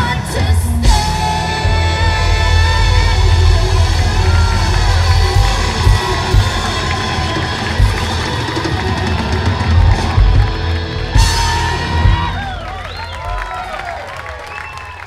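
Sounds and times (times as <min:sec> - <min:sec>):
distorted electric guitar: 0:00.0 - 0:12.9
bass guitar: 0:00.0 - 0:13.6.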